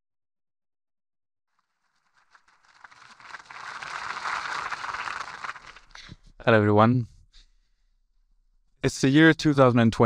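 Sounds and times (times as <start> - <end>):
audience applause: 1.6 - 6.1.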